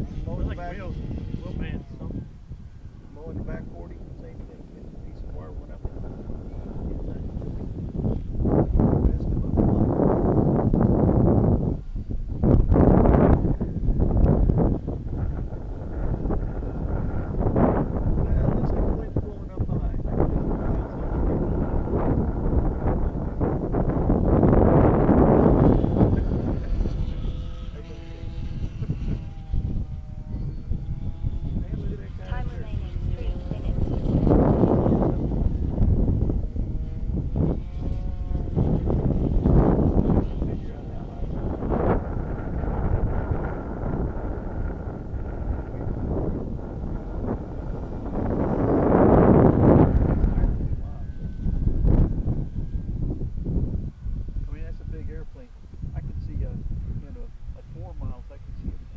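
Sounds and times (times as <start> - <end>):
faint electric motor whine: 0.0 - 58.9
wind buffeting microphone: 0.0 - 58.9.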